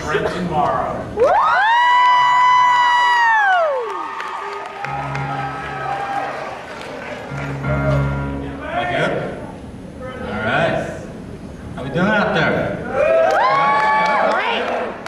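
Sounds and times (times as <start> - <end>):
audience woo: 1.2 - 7.6, 12.8 - 15.0
piano chords ringing: 4.8 - 9.6
crowd chatter: 4.8 - 12.9.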